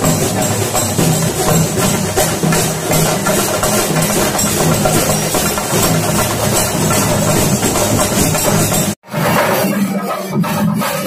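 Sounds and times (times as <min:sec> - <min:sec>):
drums played with sticks: 0:00.0 - 0:11.0.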